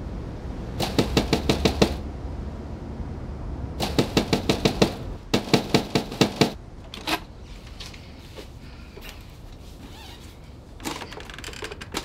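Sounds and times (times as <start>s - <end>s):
rapid knocking on a door: 0.8s - 2.0s, 3.8s - 6.6s.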